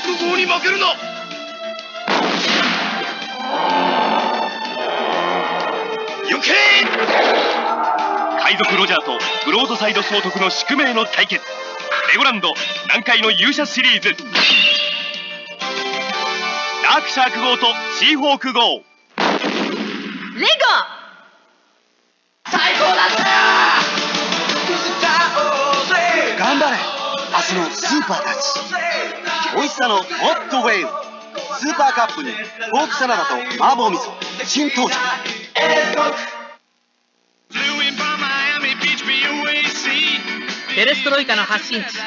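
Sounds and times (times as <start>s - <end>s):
background music: 0.0s - 19.1s, 22.5s - 36.6s, 37.5s - 42.0s
cannon shot blast: 2.1s - 3.0s, 19.2s - 20.4s.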